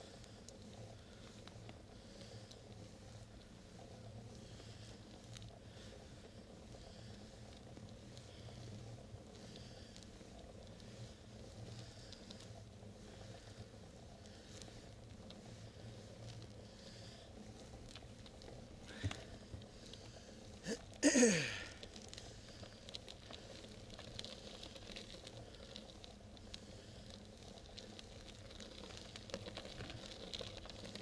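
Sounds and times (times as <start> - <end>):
bicycle rolling on paved road: 0.0 - 31.0.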